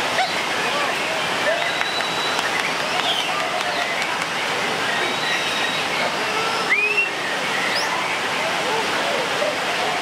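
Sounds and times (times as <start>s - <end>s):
bird whistling: 6.7s - 7.9s.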